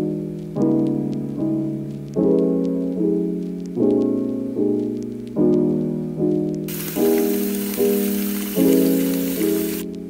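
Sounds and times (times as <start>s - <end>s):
piano music: 0.0s - 10.0s
pouring water: 6.7s - 9.9s.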